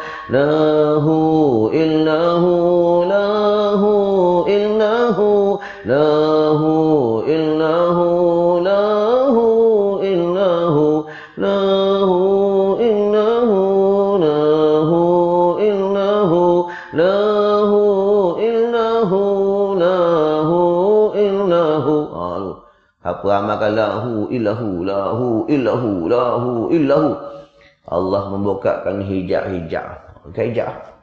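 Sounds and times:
quick breath: 0.0 - 0.3, 5.6 - 5.9, 11.1 - 11.4, 16.7 - 17.0, 22.6 - 23.0, 27.2 - 27.8
man chanting: 0.0 - 31.0.

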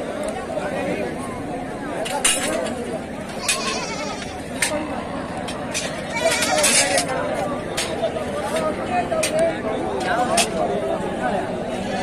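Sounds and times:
crowd of men talking: 0.0 - 12.0
sheep bleating: 3.4 - 4.5.

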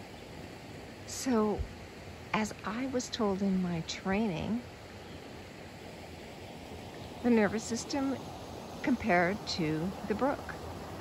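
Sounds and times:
faint rushing noise: 0.0 - 11.0.

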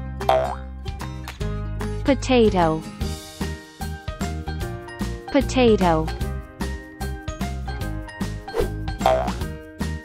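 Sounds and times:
light children's music: 0.0 - 10.0.

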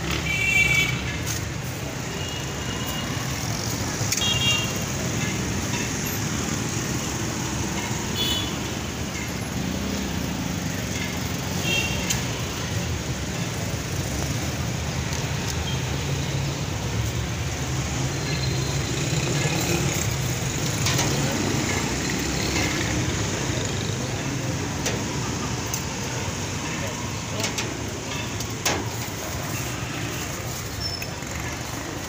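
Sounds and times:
traffic rumble: 0.0 - 32.0.

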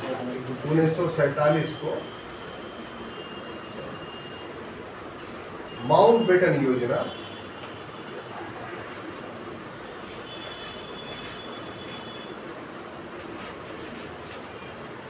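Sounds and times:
marker pen squeaking on whiteboard: 10.2 - 12.3.

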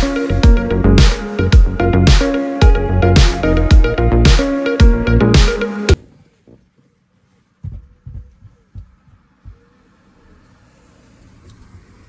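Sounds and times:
soft low thuds: 7.6 - 9.8.

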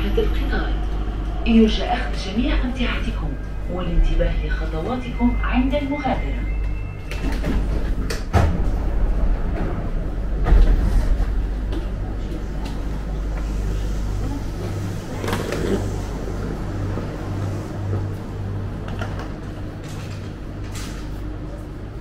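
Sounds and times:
pulsing low hum: 0.0 - 15.2
low hum in train carriage: 0.0 - 22.0.

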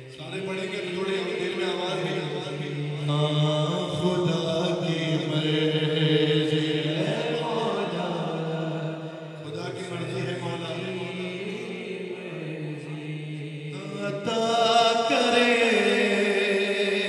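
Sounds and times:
man chanting into microphone: 0.0 - 17.0.

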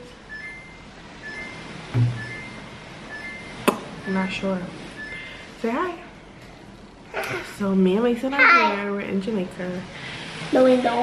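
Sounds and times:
short high two-tone beeps: 0.0 - 4.3, 5.0 - 5.4.

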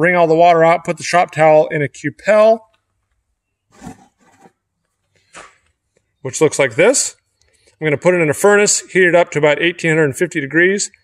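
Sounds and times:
soft handling noise: 2.8 - 6.2.

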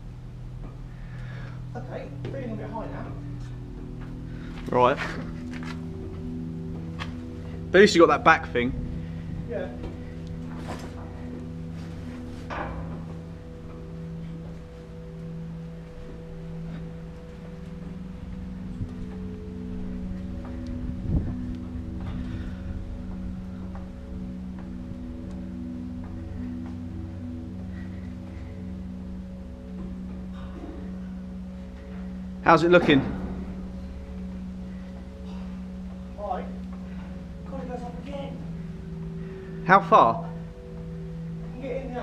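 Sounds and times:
slow ambient music: 0.0 - 42.0.

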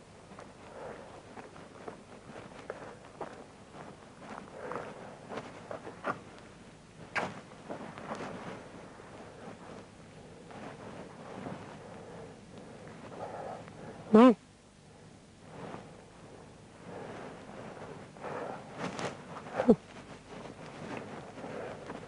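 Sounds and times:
clothing rustle: 0.2 - 14.0, 15.4 - 22.0
footsteps on outdoor path: 1.2 - 6.3.

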